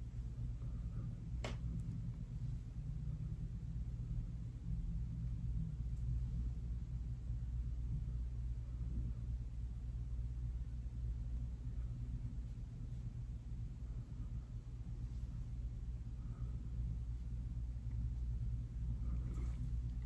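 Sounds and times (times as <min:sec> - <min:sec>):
low room hum: 0:00.0 - 0:20.0.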